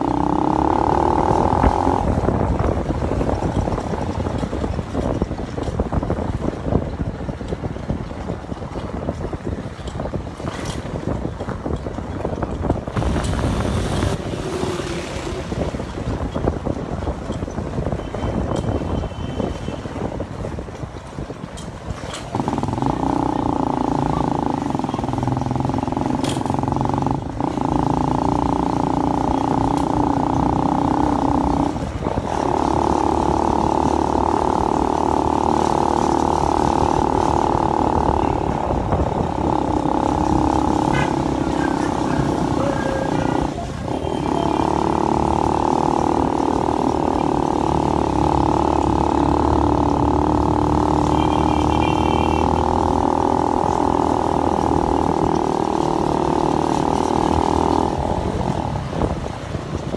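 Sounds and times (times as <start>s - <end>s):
motorcycle engine running: 0.0s - 18.9s, 19.6s - 59.9s.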